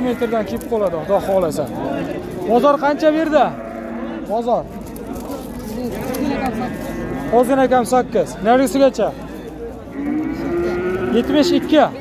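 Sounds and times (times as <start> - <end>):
calf mooing: 9.9 - 11.9.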